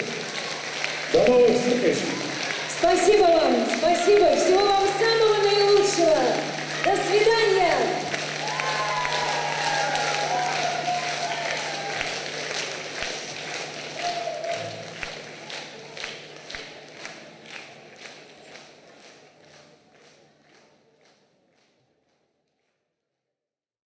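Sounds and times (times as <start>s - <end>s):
audience applauding: 0.0s - 21.2s
voices: 2.5s - 12.0s.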